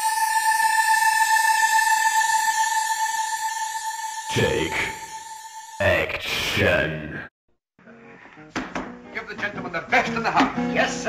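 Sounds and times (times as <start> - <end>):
hissing shimmer: 0.0 - 5.8
sweeping pitch glides: 0.0 - 6.2
steady high electronic tone: 0.0 - 6.8.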